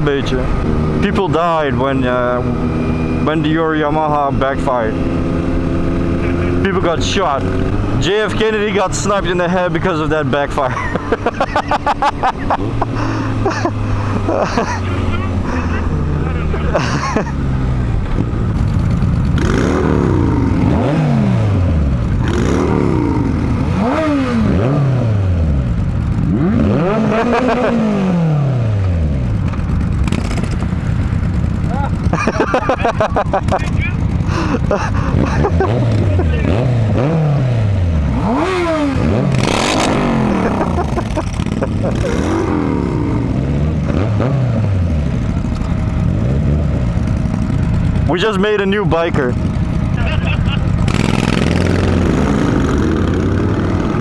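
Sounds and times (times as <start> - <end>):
motorcycle engines revving: 0.0 - 54.0.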